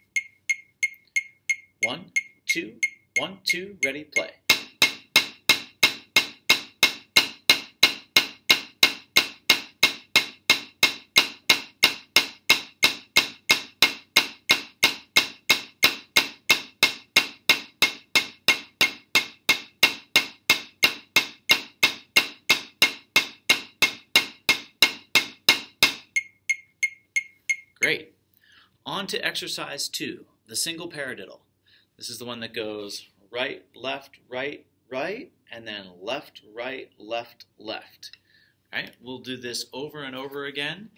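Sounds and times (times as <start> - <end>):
metronome beeps: 0.0 - 4.5, 26.1 - 27.8
drumsticks striking practice pad: 2.8 - 27.7.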